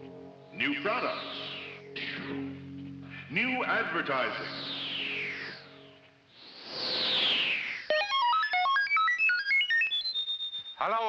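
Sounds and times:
synthesized whoosh sweeping down: 0:00.1 - 0:08.5
rapid electronic beeps: 0:03.4 - 0:11.0.

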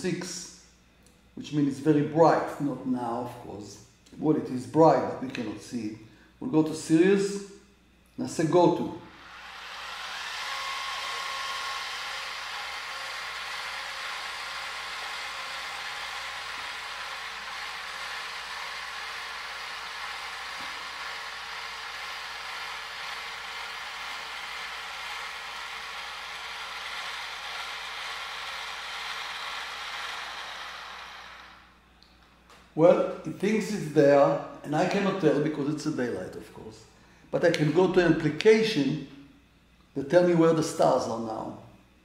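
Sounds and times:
motors whirring: 0:09.1 - 0:31.8.

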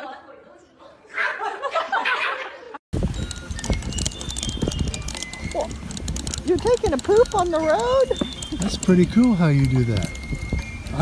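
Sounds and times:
horse hooves clip-clopping on road: 0:03.0 - 0:11.0.

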